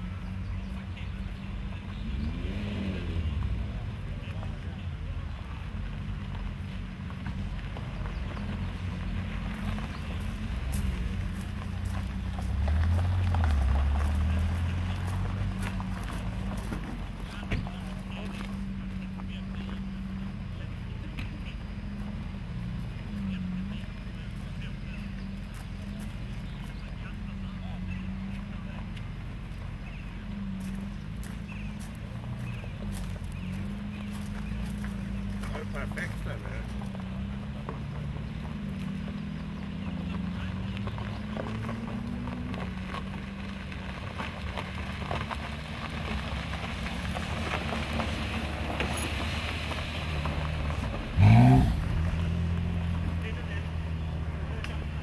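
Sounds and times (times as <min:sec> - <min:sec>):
car engine low note: 0:00.0 - 0:55.0
tyres crunching on gravel: 0:00.0 - 0:55.0.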